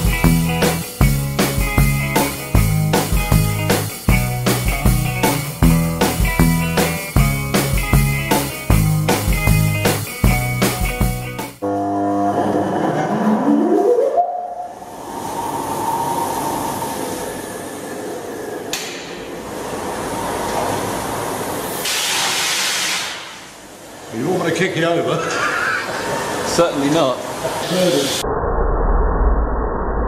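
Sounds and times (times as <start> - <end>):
hissing rush: 14.8 - 18.6, 26.0 - 28.2.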